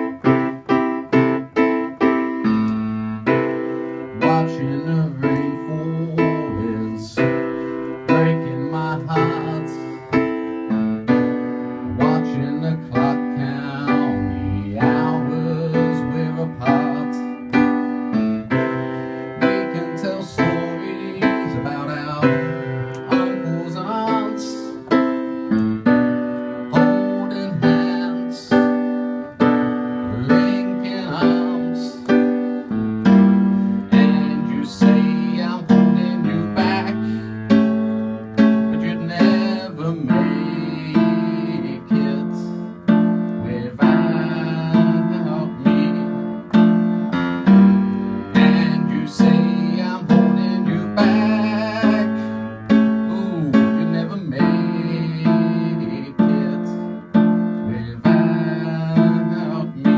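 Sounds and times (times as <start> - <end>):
piano bass note: 0.0 - 59.9
piano chords: 0.0 - 59.9.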